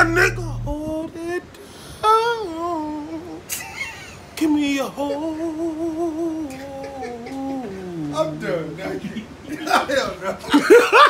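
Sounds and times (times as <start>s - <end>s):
man humming: 0.0s - 1.4s, 5.0s - 8.6s.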